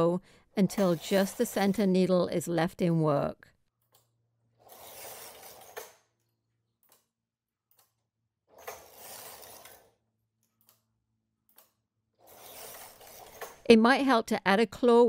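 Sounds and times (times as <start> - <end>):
knitting machine carriage rasping: 0.6 - 2.0, 4.5 - 6.1, 7.7 - 10.0, 11.5 - 13.7.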